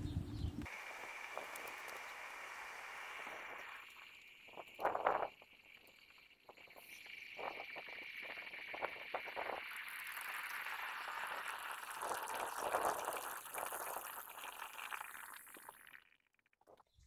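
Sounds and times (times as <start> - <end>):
boiling water hissing: 0.6 - 16.1
hot metal crackling in water: 0.6 - 16.8.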